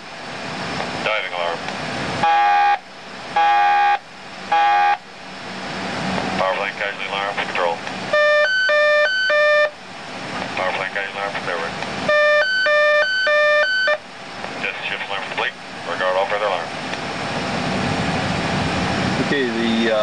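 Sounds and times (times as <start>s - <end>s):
high-low two-tone alarm: 2.2s - 5.0s, 8.1s - 9.8s, 12.1s - 14.1s
warbling rising alarm tones: 2.2s - 5.1s, 8.1s - 9.8s, 12.1s - 14.1s
loud ringing alarm tones: 2.2s - 5.2s, 8.1s - 9.9s, 12.0s - 14.1s.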